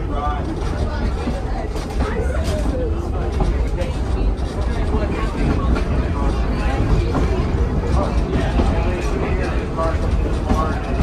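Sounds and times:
passengers chatting: 0:00.0 - 0:11.0
streetcar wheels rumbling: 0:00.0 - 0:11.0.

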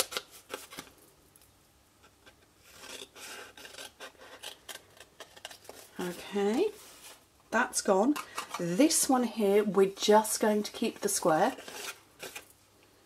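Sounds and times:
scissors cutting paper: 0:02.7 - 0:06.1.

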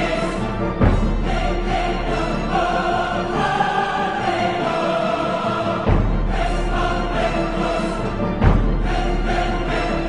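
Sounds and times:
choir-like voices holding notes: 0:00.0 - 0:10.0.

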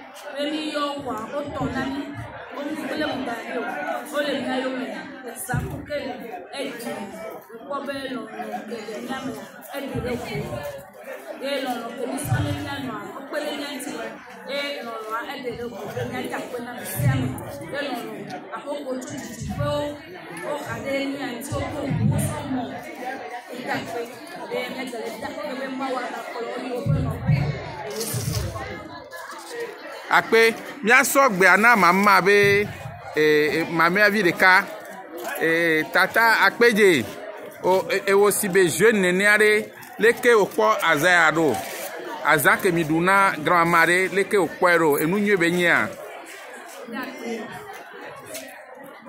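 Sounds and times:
background voices chattering: 0:00.0 - 0:49.0
woman speaking into microphone: 0:00.5 - 0:03.4, 0:04.2 - 0:07.1, 0:07.8 - 0:10.8, 0:11.5 - 0:20.0, 0:20.6 - 0:22.8, 0:26.6 - 0:28.6
woman talking into microphone: 0:18.8 - 0:20.0.

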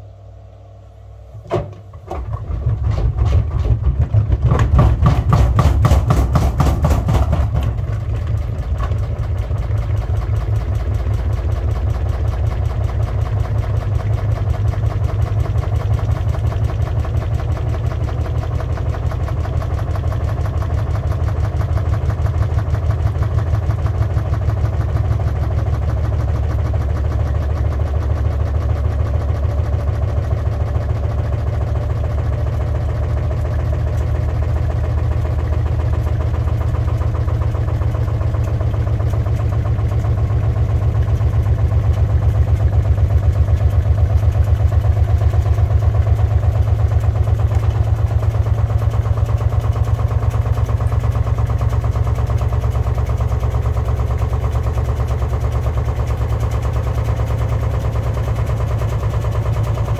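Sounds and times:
washing machine drum spinning: 0:01.3 - 0:59.9.

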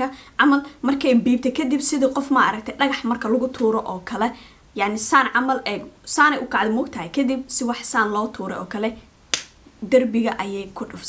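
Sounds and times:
woman speaking: 0:00.0 - 0:09.0, 0:09.8 - 0:11.0
finger snap: 0:09.3 - 0:09.6.

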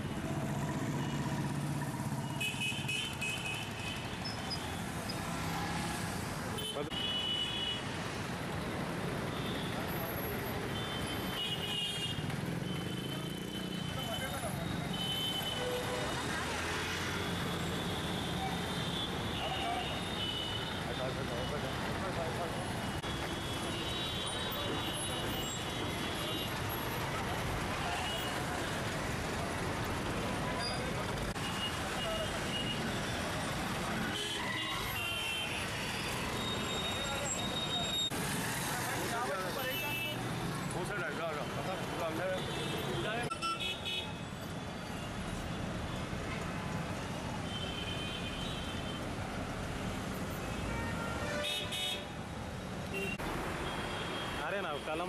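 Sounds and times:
street traffic: 0:00.0 - 0:55.0.

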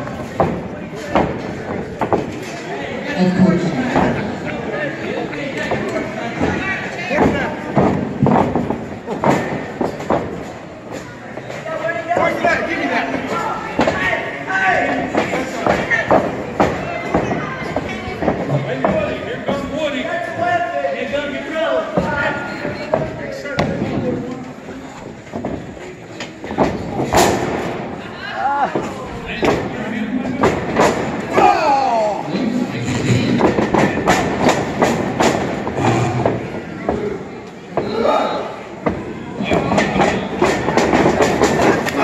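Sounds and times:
wrestlers slapping and thudding: 0:00.0 - 0:02.8, 0:03.6 - 0:11.6, 0:12.2 - 0:19.8, 0:21.9 - 0:28.0, 0:28.7 - 0:31.9, 0:32.8 - 0:38.2, 0:38.8 - 0:42.0
hall crowd noise: 0:00.0 - 0:42.0
impacts in wrestling ring: 0:26.4 - 0:28.0.

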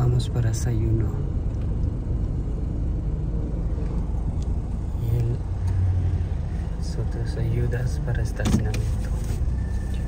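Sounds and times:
car engine rumble from inside: 0:00.0 - 0:10.0.

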